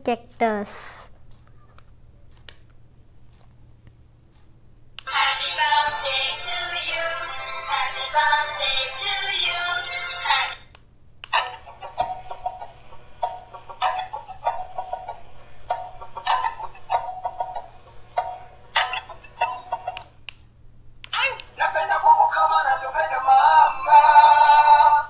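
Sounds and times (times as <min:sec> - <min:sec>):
toy playing synthetic singing: 0:05.0 - 0:10.6, 0:21.2 - 0:25.0.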